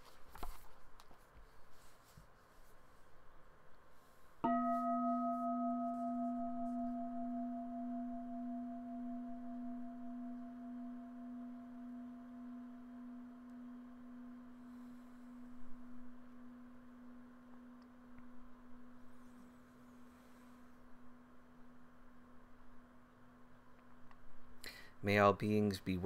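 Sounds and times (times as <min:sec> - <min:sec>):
meditation bowl bell ringing: 0:04.4 - 0:23.5.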